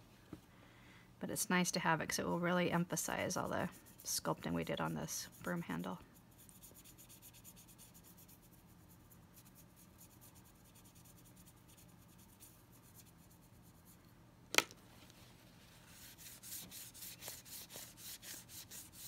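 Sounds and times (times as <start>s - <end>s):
paintbrush scratchy brushing: 2.8s - 14.1s, 15.2s - 19.0s.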